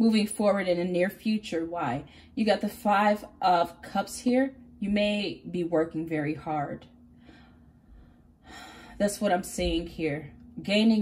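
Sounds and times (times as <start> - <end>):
woman breathing in: 7.1 - 9.0.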